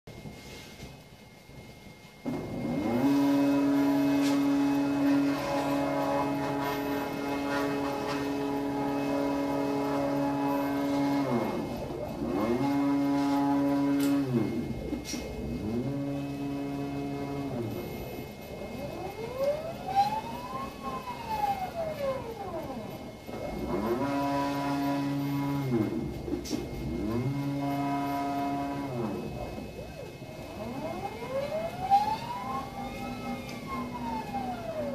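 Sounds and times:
stepper motors whining: 1.5 - 34.9.

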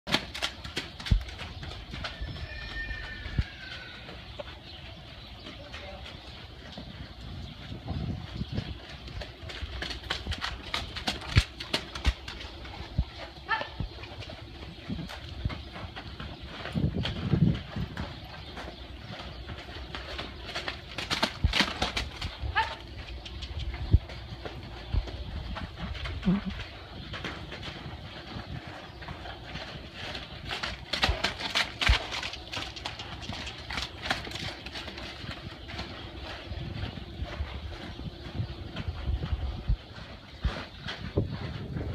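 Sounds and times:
hooves drumming on dirt: 0.0 - 41.9.

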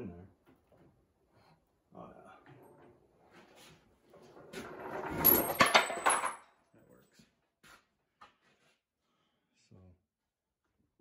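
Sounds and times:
wooden bed scraping and rattling: 3.3 - 6.0.

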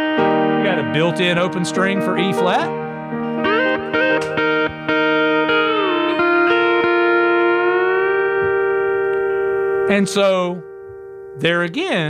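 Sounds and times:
pedal steel guitar playing: 0.0 - 12.0.

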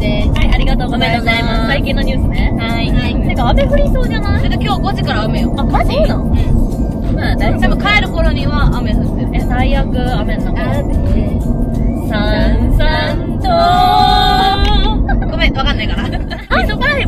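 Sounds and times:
women talking: 0.0 - 6.5, 7.2 - 11.4, 12.1 - 17.0
background music: 0.0 - 17.0
car road and engine noise: 0.0 - 17.0.

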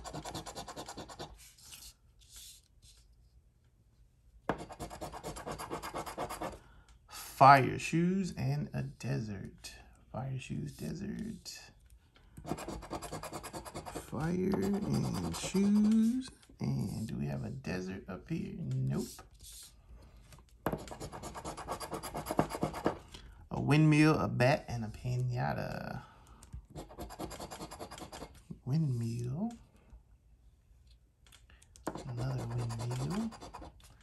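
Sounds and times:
coin scraping scratch-off ticket: 12.5 - 16.2, 26.8 - 28.4, 31.9 - 33.8.

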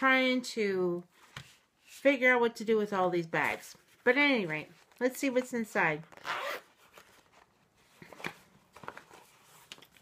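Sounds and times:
zipper pulled open: 6.1 - 6.7.

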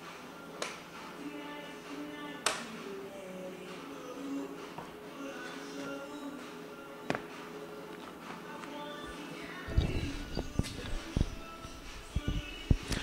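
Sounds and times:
soft music of sustained notes: 0.0 - 13.0.

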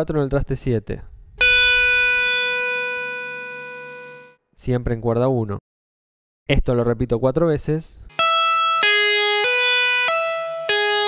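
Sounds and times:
electric guitar note ringing: 1.4 - 4.4, 8.1 - 11.0.

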